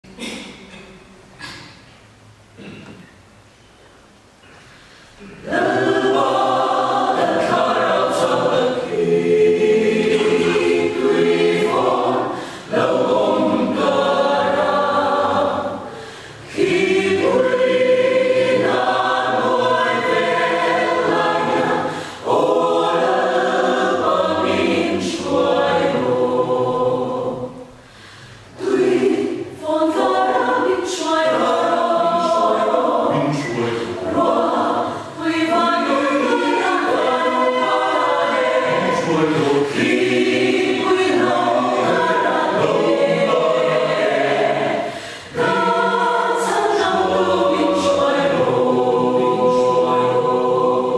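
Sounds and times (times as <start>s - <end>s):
mixed choir singing a hymn: 5.2s - 50.9s.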